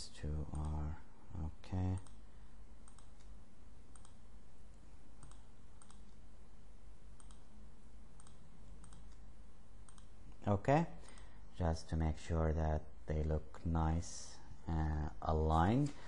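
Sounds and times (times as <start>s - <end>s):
steady low hum: 0.0s - 16.0s
mouse buttons clicking: 5.2s - 6.2s, 7.2s - 7.5s, 8.2s - 9.2s, 9.8s - 10.1s.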